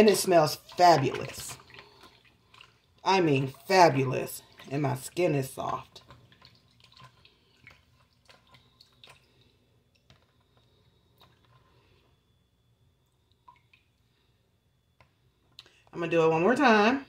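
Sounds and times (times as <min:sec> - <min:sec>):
water dripping: 0:00.0 - 0:11.6, 0:13.0 - 0:14.2.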